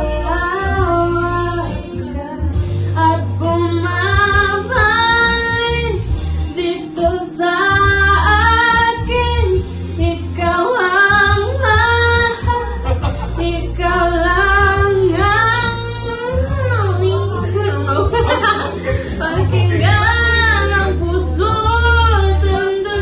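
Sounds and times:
girl singing into microphone: 0:00.0 - 0:18.4, 0:19.1 - 0:23.0
low instrumental backing: 0:00.0 - 0:23.0.

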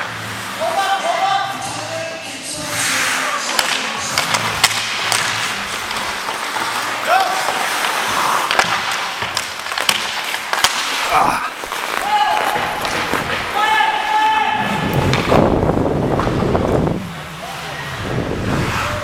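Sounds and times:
skate blades scraping ice: 0:02.6 - 0:15.4
hockey sticks and puck clicking: 0:02.8 - 0:14.1, 0:14.9 - 0:15.4
players shouting: 0:06.7 - 0:08.1, 0:10.9 - 0:15.0.

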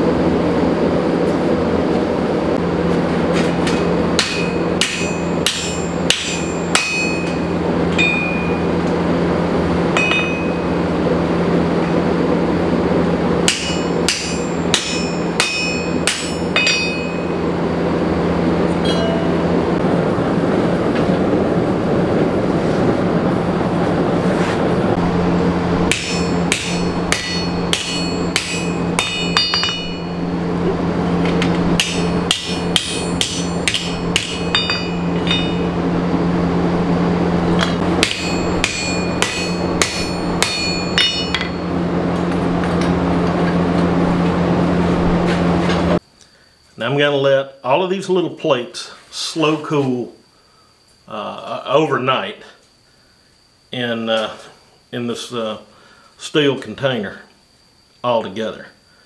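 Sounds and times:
gas forge burner roar: 0:00.0 - 0:46.8
hammer striking steel on anvil: 0:03.6 - 0:08.9, 0:09.9 - 0:10.8, 0:13.4 - 0:17.5, 0:18.8 - 0:19.6, 0:25.8 - 0:30.4, 0:31.3 - 0:35.8, 0:37.6 - 0:41.8.

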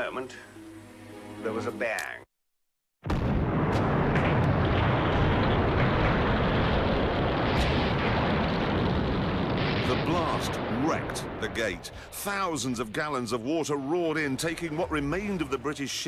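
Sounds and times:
huge explosion rumble: 0:03.0 - 0:16.0
debris cracks: 0:03.1 - 0:11.9.

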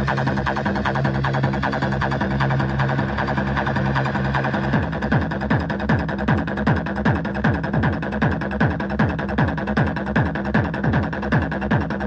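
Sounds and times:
dense synth layer: 0:00.0 - 0:12.0
fast techno music: 0:00.0 - 0:12.0
ticking hi-hats: 0:00.0 - 0:12.0
kick drum beating: 0:04.7 - 0:12.0.

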